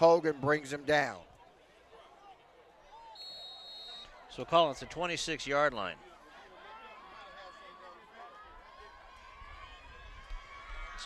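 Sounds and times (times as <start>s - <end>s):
faint stadium crowd murmur: 0.0s - 11.0s.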